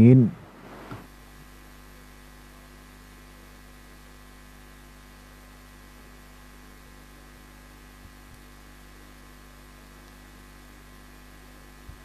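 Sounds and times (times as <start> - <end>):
low hiss: 0.0 - 1.1
electrical mains hum: 0.0 - 12.0.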